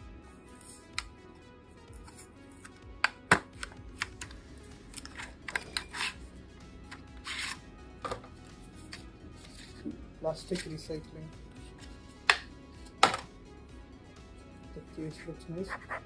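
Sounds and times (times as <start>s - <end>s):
soft background music: 0.0s - 16.0s
packaging clicks and taps: 2.0s - 5.9s.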